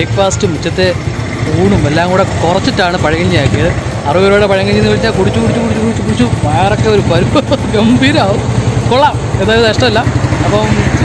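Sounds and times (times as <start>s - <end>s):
people talking: 0.0s - 11.0s
vehicle engine idling: 0.0s - 11.0s.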